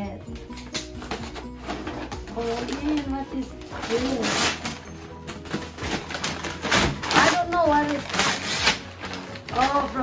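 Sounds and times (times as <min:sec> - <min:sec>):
metallic wrapping paper crinkling: 0:00.4 - 0:10.0.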